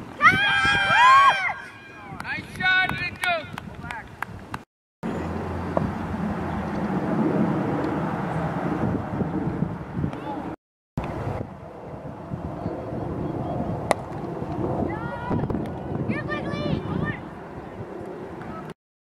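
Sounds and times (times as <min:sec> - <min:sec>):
outdoor field noise: 0:00.0 - 0:18.8.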